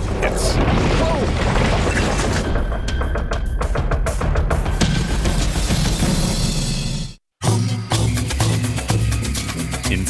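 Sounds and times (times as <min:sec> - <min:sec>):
drum-heavy theme music: 0:02.8 - 0:10.0.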